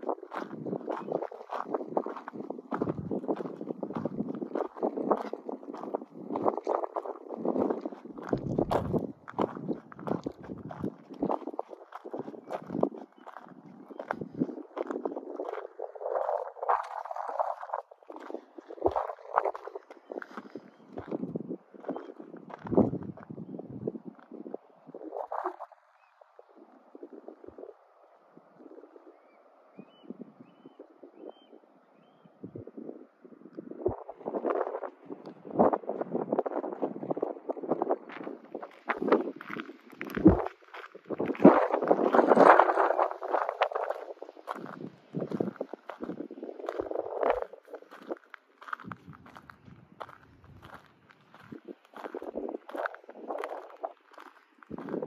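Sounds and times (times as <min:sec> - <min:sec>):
footsteps crunching on gravel: 0:00.0 - 0:23.2, 0:36.6 - 0:55.0
wind buffeting microphone: 0:00.0 - 0:29.2, 0:29.8 - 0:55.0.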